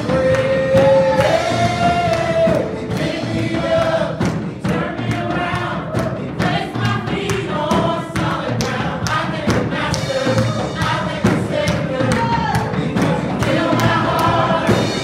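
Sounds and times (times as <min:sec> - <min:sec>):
band playing: 0:00.0 - 0:15.0
choir singing: 0:00.0 - 0:15.0
steady drum beat: 0:00.0 - 0:15.0.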